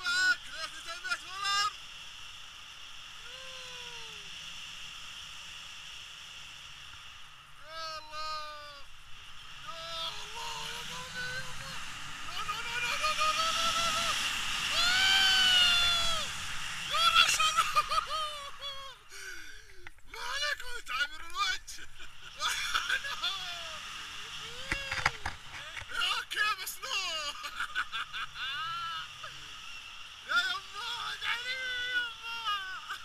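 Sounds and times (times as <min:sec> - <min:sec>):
people laughing: 0:09.7 - 0:14.2, 0:16.9 - 0:20.3, 0:21.6 - 0:23.8, 0:24.4 - 0:29.3
people shouting excitedly: 0:09.7 - 0:18.6.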